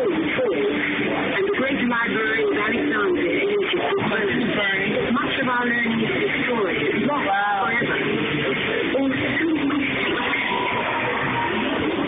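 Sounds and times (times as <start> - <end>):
indistinct chatter of voices: 0.0 - 12.0.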